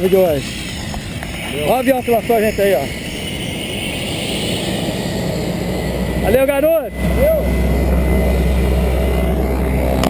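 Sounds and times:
faint steady hum: 0:00.0 - 0:10.0
wind buffeting microphone: 0:00.0 - 0:10.0.

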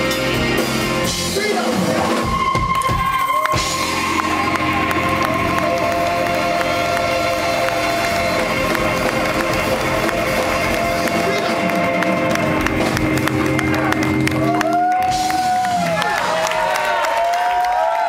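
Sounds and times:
live rock band playing: 0:00.0 - 0:16.8
crowd cheering: 0:01.6 - 0:18.0.

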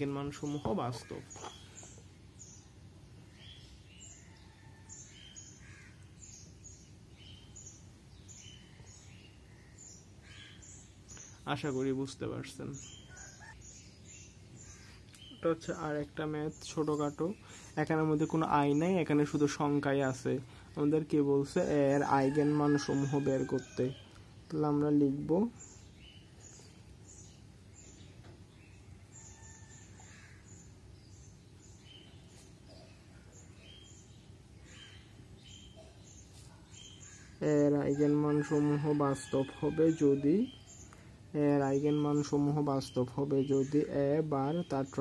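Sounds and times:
birds chirping faintly: 0:00.0 - 0:45.0
low steady background noise: 0:00.0 - 0:45.0
faint bird chirps: 0:12.6 - 0:19.6.

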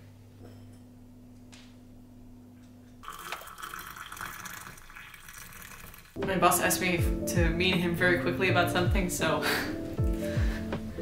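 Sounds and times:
water pouring into mug: 0:03.0 - 0:06.2.

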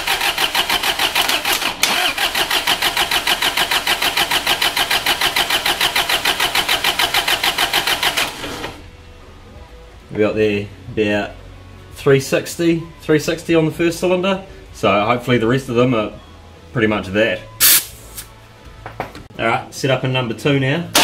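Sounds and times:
starter motor cranking diesel engine: 0:00.0 - 0:08.8.

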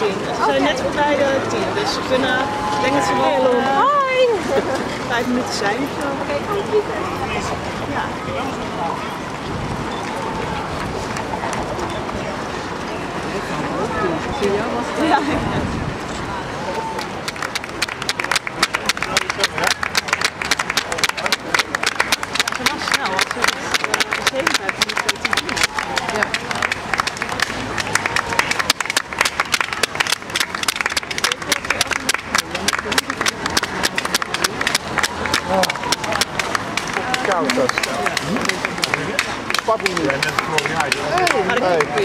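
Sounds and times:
spectators chatting: 0:00.0 - 0:42.0
people clapping: 0:09.9 - 0:12.4, 0:16.6 - 0:42.0.

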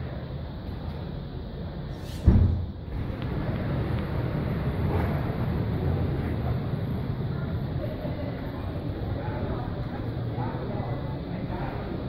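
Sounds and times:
low rumble of street noise: 0:00.0 - 0:12.0
loud thump: 0:02.1 - 0:02.8.

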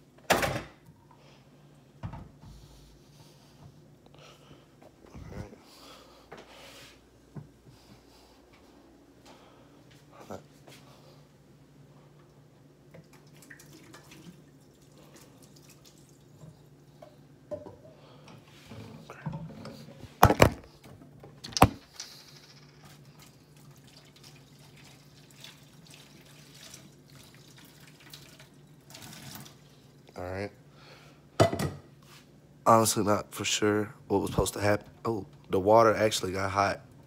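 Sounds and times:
water pouring into sink: 0:13.0 - 0:16.6, 0:23.1 - 0:29.8.

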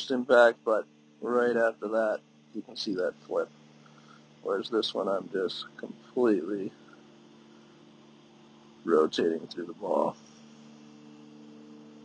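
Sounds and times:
man talking: 0:00.0 - 0:03.5, 0:04.4 - 0:06.8, 0:08.9 - 0:10.2
low electrical hum and hiss: 0:00.0 - 0:12.0.

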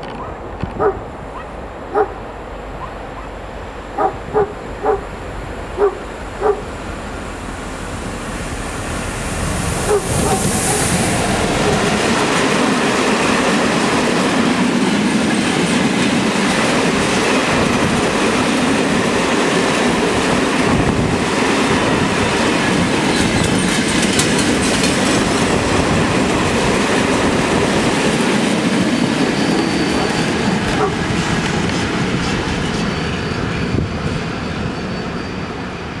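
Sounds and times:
freight train wheels clattering: 0:09.2 - 0:34.7
high wheel squeal: 0:28.7 - 0:31.0, 0:32.1 - 0:36.0.

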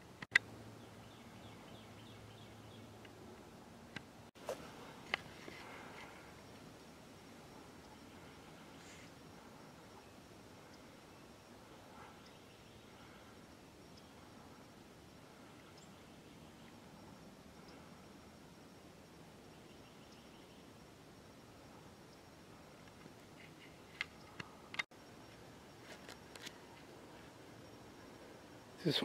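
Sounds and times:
faint outdoor ambience: 0:00.0 - 0:29.0.

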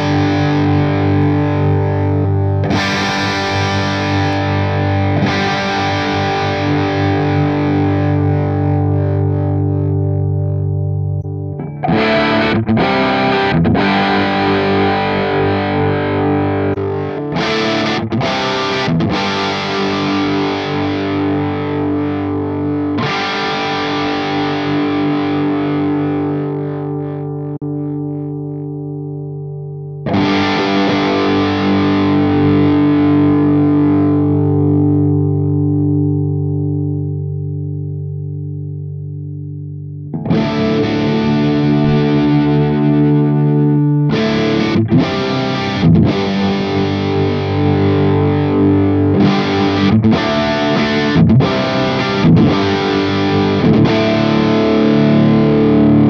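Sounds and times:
electric guitar chords: 0:00.0 - 0:56.0.

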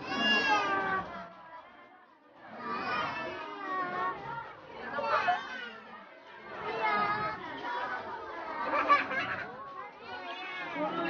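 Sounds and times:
faint background murmur: 0:00.0 - 0:11.0.

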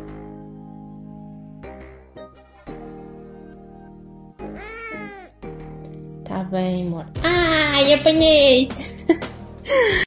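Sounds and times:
background music: 0:00.0 - 0:10.0
kitten meowing: 0:04.4 - 0:05.4.

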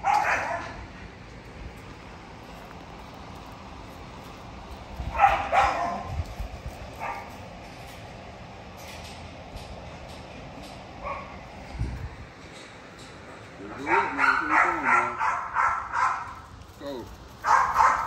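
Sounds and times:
puppy barking: 0:00.0 - 0:00.8, 0:05.1 - 0:06.2, 0:07.0 - 0:07.3, 0:11.0 - 0:11.4, 0:13.8 - 0:16.4, 0:17.4 - 0:18.0.

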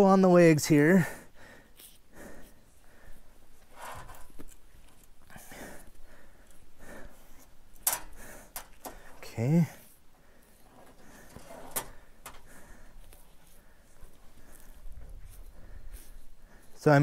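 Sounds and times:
man breathing with effort: 0:00.9 - 0:16.8.

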